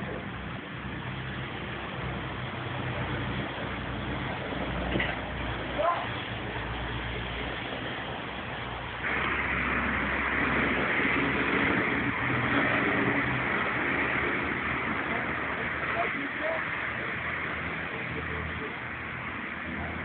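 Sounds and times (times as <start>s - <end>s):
road noise: 0.0s - 20.0s
vehicle engine: 0.0s - 20.0s.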